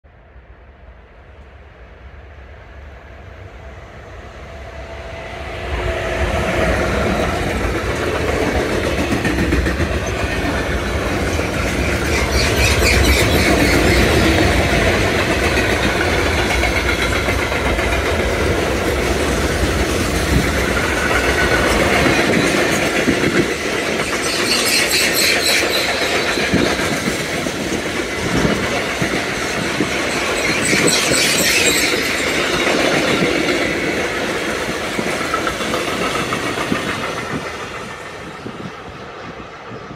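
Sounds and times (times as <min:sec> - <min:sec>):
freight train rumbling and clattering: 0:01.0 - 0:39.9.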